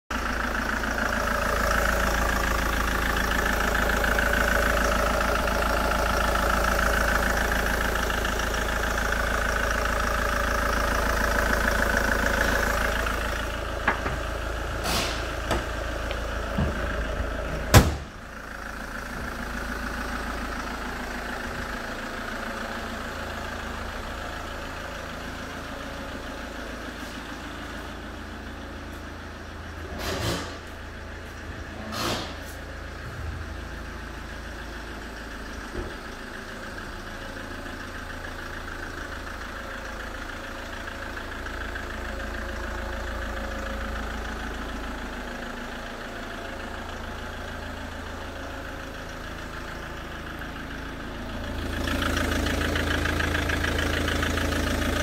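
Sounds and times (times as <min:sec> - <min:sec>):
diesel engine idling: 0:00.1 - 0:55.0
loud bang: 0:17.7 - 0:18.1.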